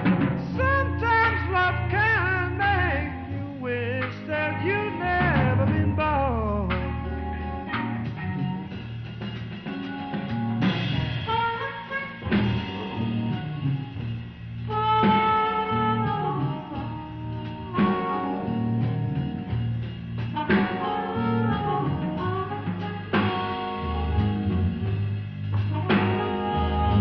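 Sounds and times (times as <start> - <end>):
drums and bass: 0.0 - 27.0
harmonica bent notes: 0.0 - 27.0.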